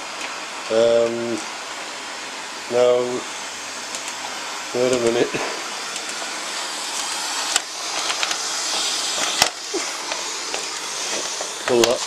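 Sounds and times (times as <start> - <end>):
robot vacuum cleaner running: 0.0 - 12.0.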